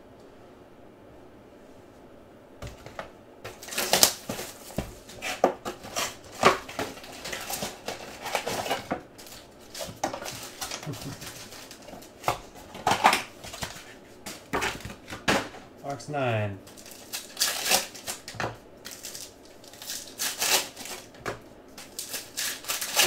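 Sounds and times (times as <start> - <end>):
foil wrappers crinkling: 2.7 - 15.5, 16.6 - 23.0.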